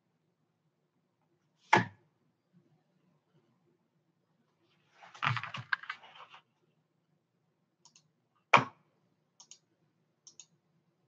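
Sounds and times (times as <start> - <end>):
computer mouse clicks: 7.8 - 8.1, 9.4 - 10.6.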